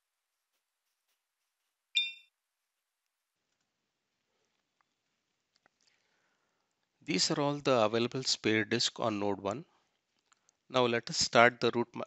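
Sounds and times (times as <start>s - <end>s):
computer alert ding: 2.0s - 2.2s.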